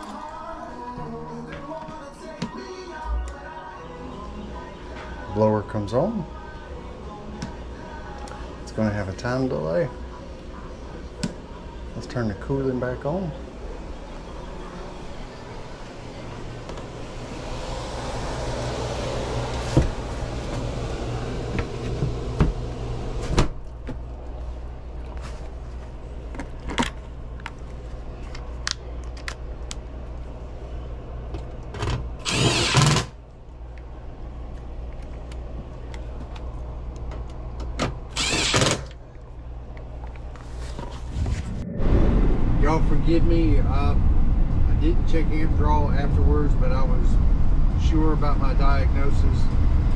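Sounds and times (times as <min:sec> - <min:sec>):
blower low hum: 0:00.0 - 0:49.9
cordless driver whirring: 0:32.2 - 0:33.1, 0:38.1 - 0:38.9.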